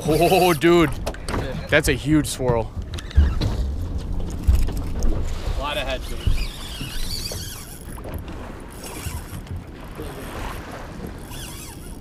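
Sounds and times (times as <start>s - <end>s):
sea water: 0.0s - 12.0s
wind: 0.0s - 12.0s.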